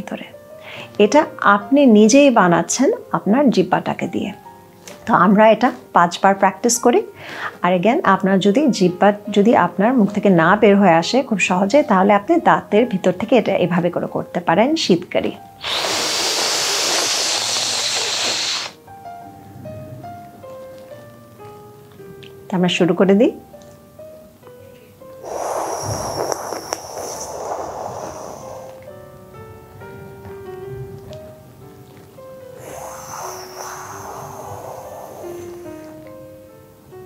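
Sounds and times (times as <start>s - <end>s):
soft music with held notes: 0.0s - 15.6s, 16.8s - 37.0s
hissing breath through teeth: 15.6s - 18.8s, 25.2s - 28.9s, 32.5s - 36.1s.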